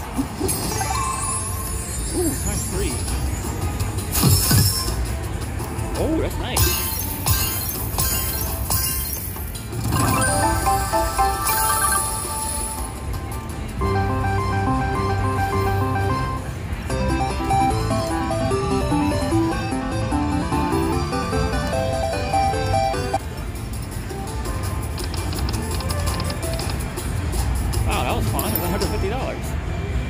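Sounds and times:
slot machine bonus music: 0.4s - 5.4s, 6.5s - 23.2s.

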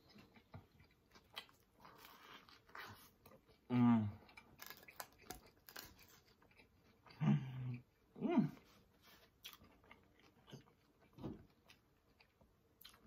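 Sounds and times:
close chewing: 0.0s - 13.0s.

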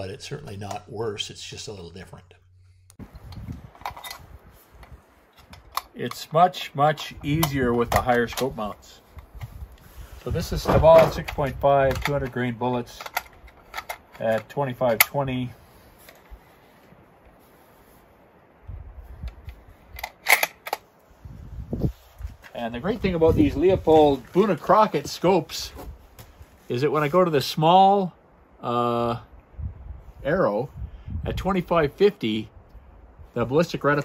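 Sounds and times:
wind rumble on microphone: 3.0s - 5.7s, 7.1s - 12.3s, 18.6s - 20.0s, 21.1s - 24.3s, 25.7s - 26.6s, 29.2s - 33.4s
rifle magazine clicks: 20.0s - 20.8s.

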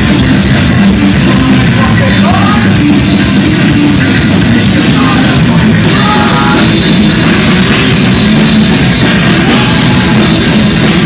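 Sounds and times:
bass guitar: 0.0s - 11.0s
distorted electric guitars: 0.0s - 11.0s
driving drumming on drum kit: 0.0s - 11.0s.

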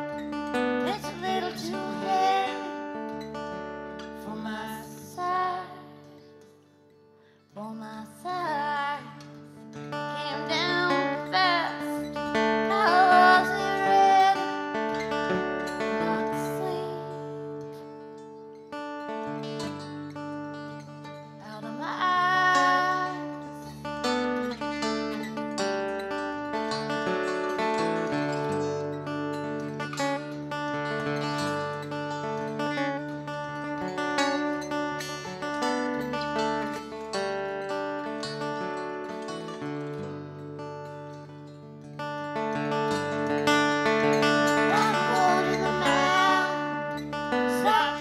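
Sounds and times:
banjo picking: 0.0s - 6.3s, 8.5s - 48.0s
strummed resonator guitar: 0.0s - 48.0s.

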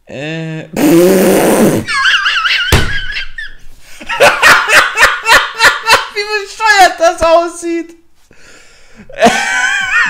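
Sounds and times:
man laughing hard: 1.7s - 6.2s, 9.1s - 10.0s
thump: 2.7s - 3.1s.

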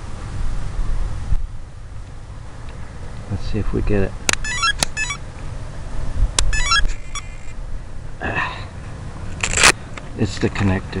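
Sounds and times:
wind rumble on microphone: 0.0s - 1.9s.

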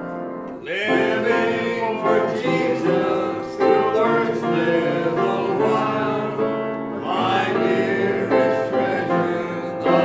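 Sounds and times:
grand piano: 0.0s - 10.0s
group singing a hymn: 0.5s - 10.0s.

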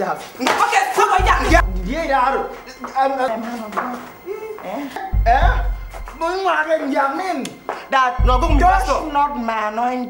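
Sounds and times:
voices: 0.0s - 10.0s
background film music: 1.2s - 10.0s.

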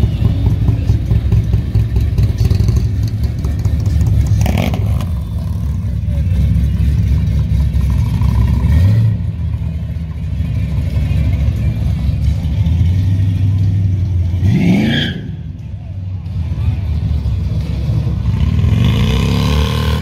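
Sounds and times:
car engine exhaust rumble: 0.0s - 18.9s.

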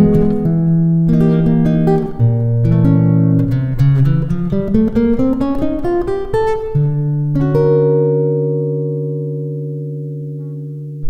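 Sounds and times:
guitar chord ringing: 0.0s - 11.0s
guitar bass note: 8.0s - 11.0s.

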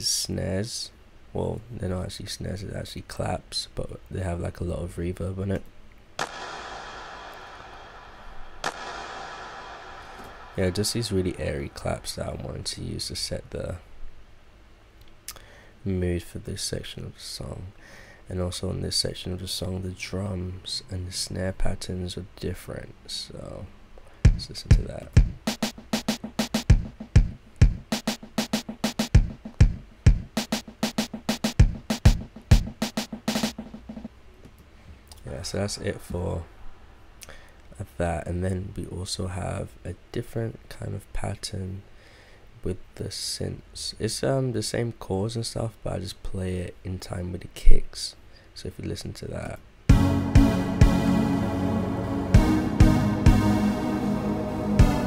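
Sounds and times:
hand clap with long reverb: 6.2s - 10.6s
hip-hop beat: 6.2s - 12.4s, 24.3s - 34.1s, 49.9s - 55.0s.

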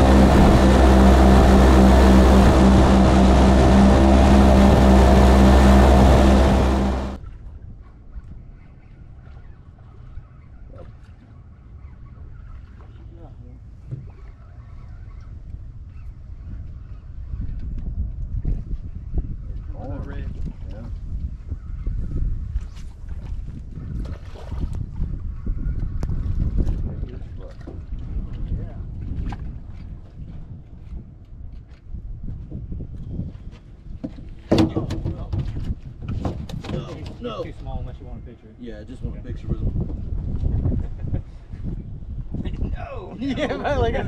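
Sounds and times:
wind rumbling on microphone: 0.0s - 44.0s.

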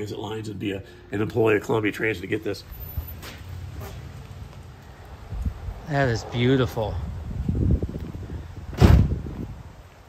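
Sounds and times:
car door shutting: 8.7s - 9.3s.

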